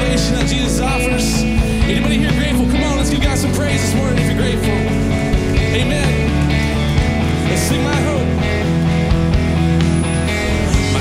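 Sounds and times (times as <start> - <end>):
acoustic guitar: 0.0 - 11.0
electric bass: 0.0 - 11.0.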